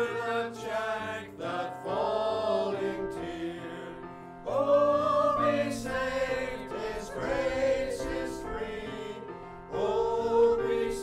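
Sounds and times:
group singing a hymn: 0.0s - 11.0s
keyboard accompaniment: 0.0s - 11.0s.

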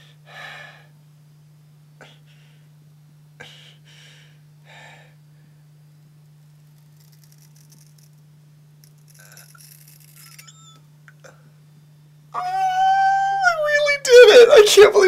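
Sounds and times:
man crying out: 12.4s - 15.0s.

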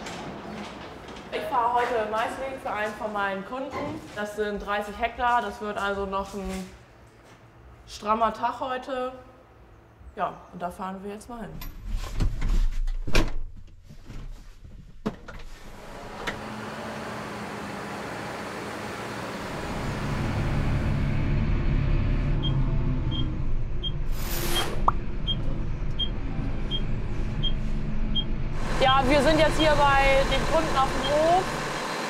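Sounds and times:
tractor engine running: 24.9s - 32.0s.

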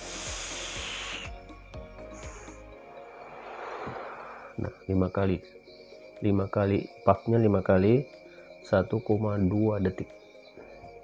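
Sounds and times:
breathy exhale: 0.0s - 1.4s, 2.0s - 4.6s
hiss of air through vape: 0.0s - 4.6s.

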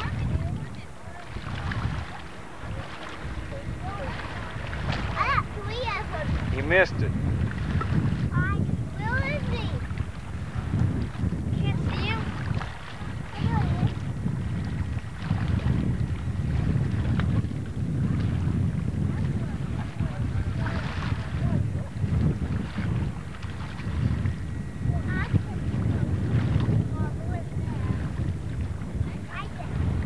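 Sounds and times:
faint voices: 0.0s - 17.6s, 18.2s - 30.0s
wind buffeting microphone: 0.0s - 30.0s.

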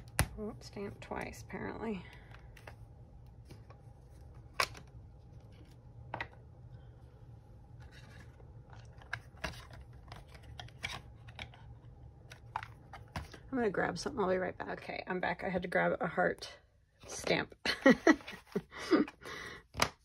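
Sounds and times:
steady low hum: 0.0s - 19.6s.

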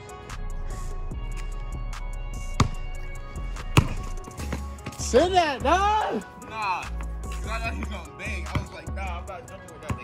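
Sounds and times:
background music: 0.0s - 10.0s
basketball bouncing on asphalt: 2.5s - 5.3s, 7.0s - 8.9s, 9.8s - 10.0s.

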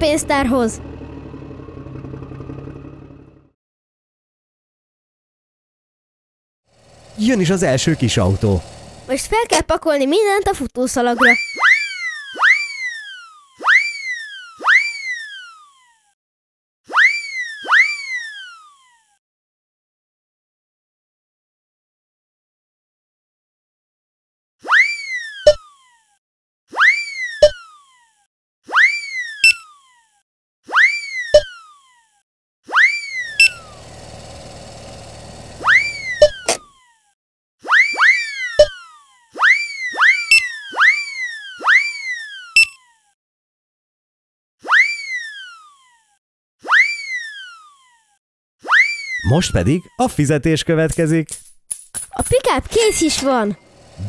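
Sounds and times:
steady buzz: 6.8s - 9.3s, 33.2s - 36.6s, 53.0s - 54.0s
cartoon whistly swoops with pop: 11.3s - 15.5s, 16.9s - 18.6s, 24.6s - 25.6s, 30.7s - 31.6s, 32.7s - 33.5s, 37.6s - 42.7s, 44.6s - 45.6s, 46.6s - 47.6s, 48.6s - 49.2s.

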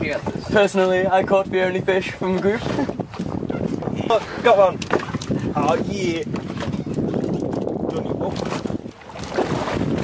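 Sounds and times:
water slapping boat hull: 0.0s - 10.0s
wind buffeting microphone: 0.0s - 10.0s.

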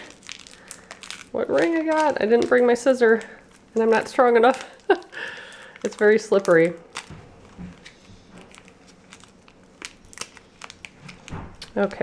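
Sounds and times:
foil packet crinkling: 0.0s - 12.0s.

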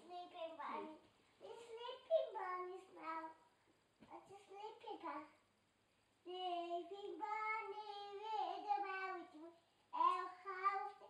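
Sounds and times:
child singing: 0.0s - 3.4s, 4.1s - 5.4s, 6.3s - 11.0s.

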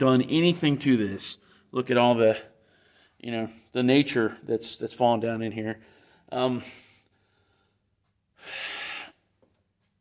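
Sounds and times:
man inhaling: 5.8s - 9.3s.

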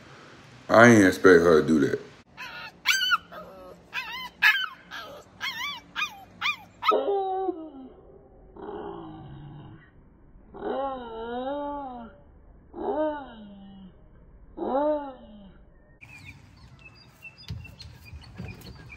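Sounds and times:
puppy yips and whines: 2.4s - 7.2s
puppy howling: 2.4s - 9.2s, 10.5s - 13.9s, 14.6s - 15.6s.

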